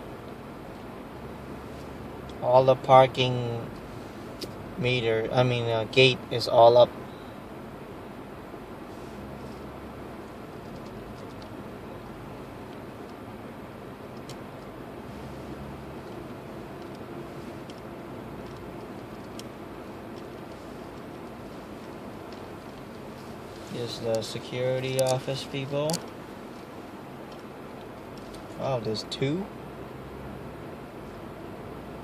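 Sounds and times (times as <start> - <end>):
car engine hum: 0.0 - 32.0.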